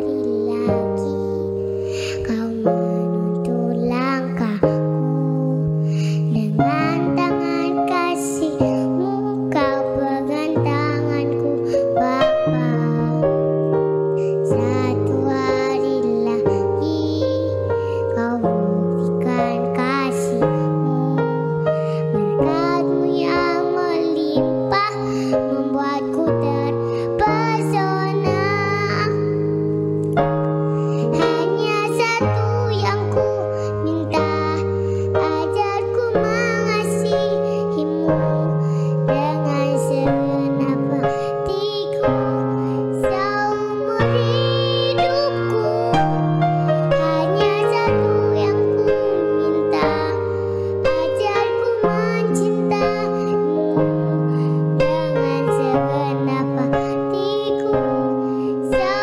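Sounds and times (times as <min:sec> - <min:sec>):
electronic keyboard chords: 0:00.0 - 0:59.0
girl singing: 0:00.0 - 0:59.0.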